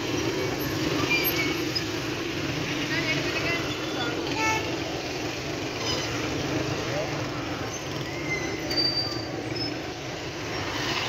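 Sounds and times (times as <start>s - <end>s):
motorcycles passing: 0.0s - 11.0s
road noise: 0.0s - 11.0s.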